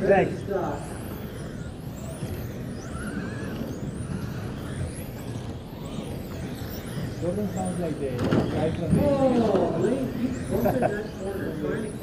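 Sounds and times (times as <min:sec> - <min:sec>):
rc car motors whining: 0:00.0 - 0:12.0.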